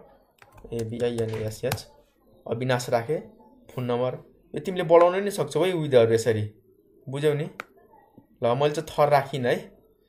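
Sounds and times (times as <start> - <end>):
man speaking: 0.6 - 7.6, 8.4 - 9.8.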